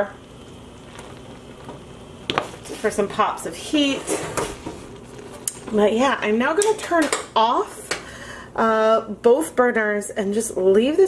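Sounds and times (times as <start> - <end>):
simmering liquid hissing: 0.0 - 5.7.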